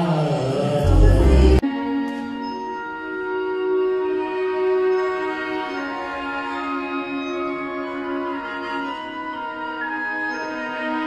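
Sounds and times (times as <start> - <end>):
orchestra strings sustained notes: 0.0 - 11.0.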